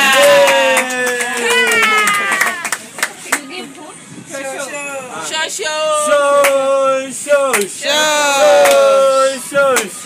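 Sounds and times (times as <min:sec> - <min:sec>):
hands clapping: 0:00.1 - 0:03.5, 0:06.4 - 0:06.6, 0:07.5 - 0:07.7, 0:08.6 - 0:08.9, 0:09.7 - 0:10.0.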